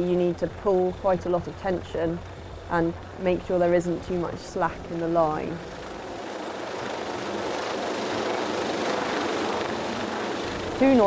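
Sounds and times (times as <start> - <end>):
helicopter rotor and engine: 0.0 - 11.0.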